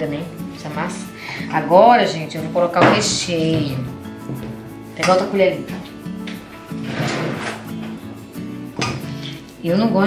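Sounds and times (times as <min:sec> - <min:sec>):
background music: 0:00.0 - 0:10.0
kitchen drawer sliding: 0:06.8 - 0:08.0.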